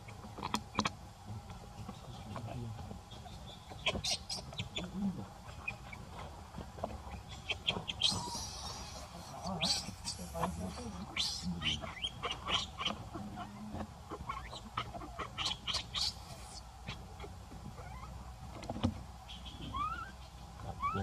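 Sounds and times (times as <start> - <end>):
baby monkey squealing: 3.7 - 5.0, 7.4 - 18.1, 19.4 - 20.2, 20.8 - 21.0.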